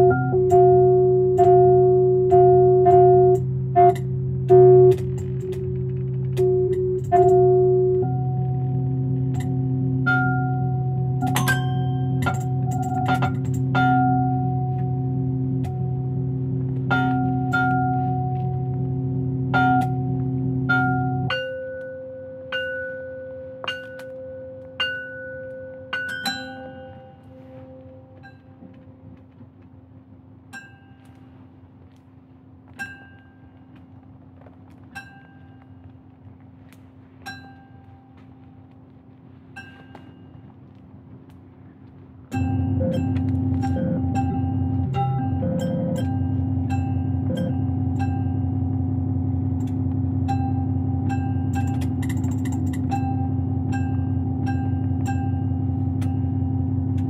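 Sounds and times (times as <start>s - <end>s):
glitchy retriggered pitched tone: 0.0s - 21.4s, 42.3s - 57.0s
steady low drone: 0.0s - 21.7s, 39.8s - 57.0s.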